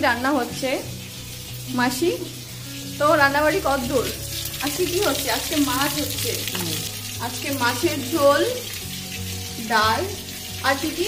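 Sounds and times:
food sizzling in oil: 0.0s - 11.0s
person speaking: 6.5s - 6.9s.

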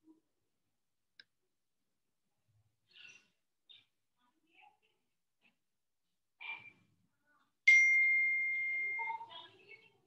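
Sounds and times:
bell-like ding: 7.7s - 9.2s.

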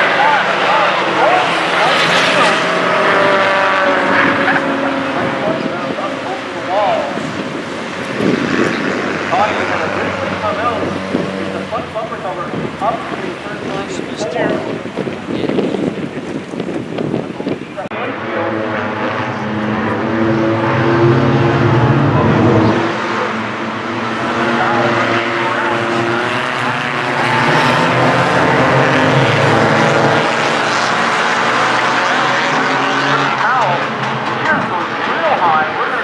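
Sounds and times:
race car engines at high revs: 0.0s - 36.0s.

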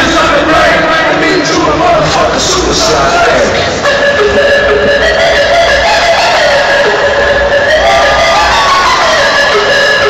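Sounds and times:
crowd cheering: 0.0s - 10.0s
hardcore dance music: 0.0s - 10.0s.

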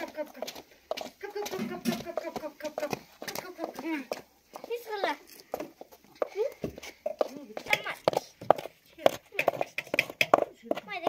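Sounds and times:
children chattering: 0.0s - 0.6s, 1.2s - 11.0s
sharp taps: 6.6s - 11.0s.

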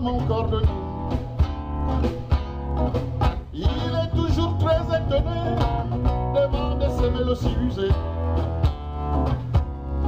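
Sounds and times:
person singing: 0.0s - 1.2s, 3.5s - 8.1s
acoustic guitar strumming: 0.0s - 10.0s
electric bass line: 0.0s - 10.0s.

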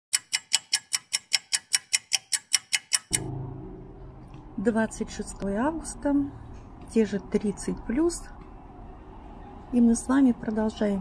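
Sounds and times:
rapid even ticking: 0.1s - 3.3s.

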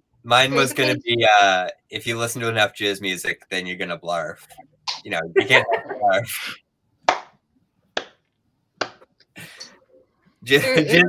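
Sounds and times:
slow hand claps: 7.1s - 7.3s, 8.0s - 8.2s.

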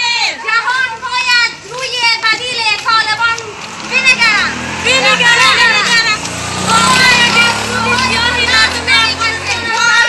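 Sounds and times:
women chanting slogans: 0.0s - 10.0s.

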